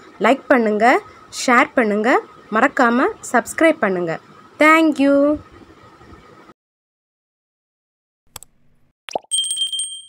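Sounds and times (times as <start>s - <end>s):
notification bell ringing: 9.3s - 10.0s.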